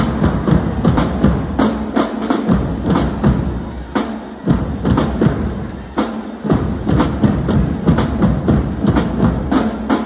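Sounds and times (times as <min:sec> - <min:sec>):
bass drums: 0:00.0 - 0:10.0
snare drums: 0:00.0 - 0:10.0.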